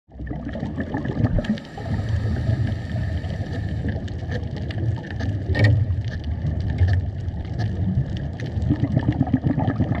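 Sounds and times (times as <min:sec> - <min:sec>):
underwater low rumble: 0:00.1 - 0:10.0
sharp clicks and crackles: 0:01.3 - 0:09.9.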